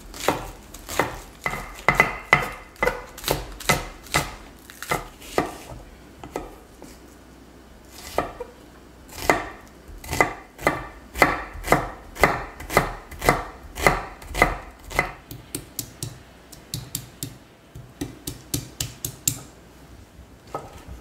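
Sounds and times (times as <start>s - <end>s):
knife chopping on cutting board: 0.2s - 6.6s, 8.0s - 8.5s, 9.1s - 19.5s.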